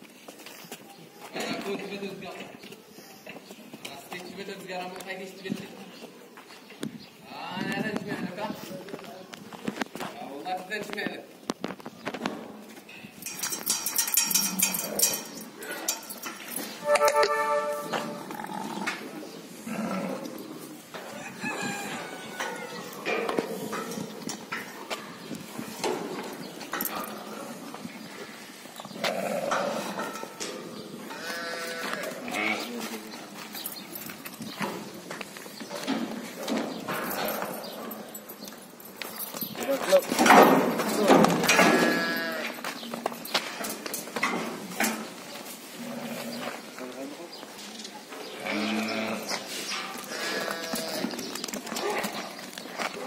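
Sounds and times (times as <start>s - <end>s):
farm animal calls: 28.9s - 32.9s, 48.2s - 52.4s
sheep bleating: 31.1s - 32.7s, 41.6s - 42.6s, 48.4s - 49.4s, 50.1s - 51.1s.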